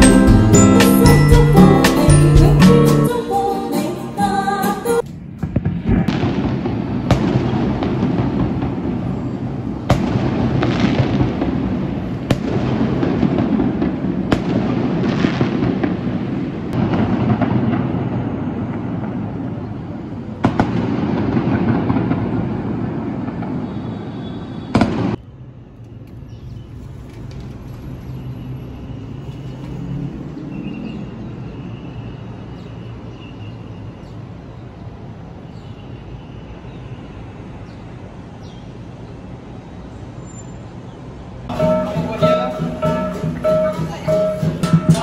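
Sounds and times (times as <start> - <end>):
live music: 0.0 - 5.1, 41.5 - 45.0
fireworks crackling and banging: 5.0 - 30.4, 41.4 - 45.0.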